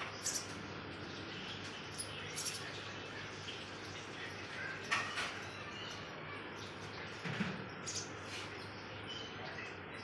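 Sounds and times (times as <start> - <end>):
nestling birds cheeping: 0.0 - 10.0.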